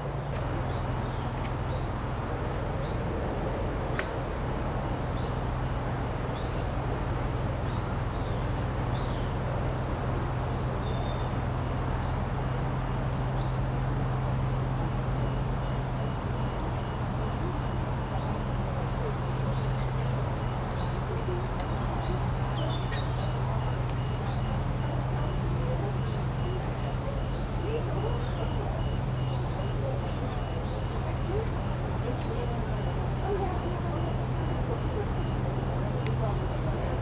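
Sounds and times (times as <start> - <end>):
boat engine humming: 0.0 - 37.0
small birds chirping: 0.3 - 2.0, 7.6 - 12.4, 13.0 - 26.6, 27.2 - 32.9.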